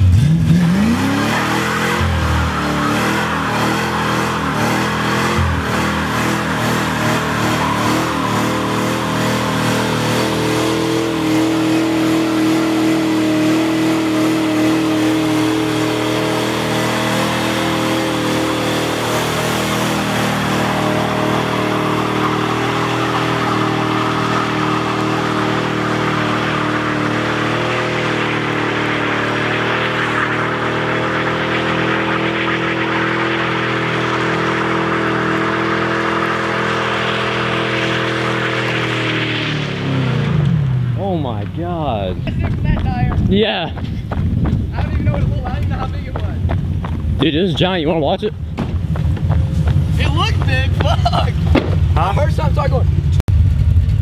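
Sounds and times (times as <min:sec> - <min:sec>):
car engine at high revs: 0:00.0 - 0:54.0
tire spinning on road: 0:00.0 - 0:54.0.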